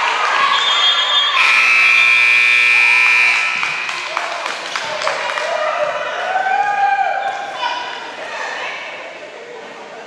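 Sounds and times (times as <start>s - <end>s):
court noise: 0.0s - 10.0s
scoreboard horn buzzing: 1.4s - 4.0s.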